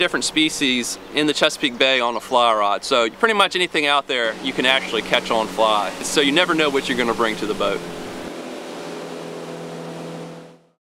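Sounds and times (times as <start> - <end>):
rushing water: 0.0 - 10.7
outboard motor hum: 0.0 - 10.8.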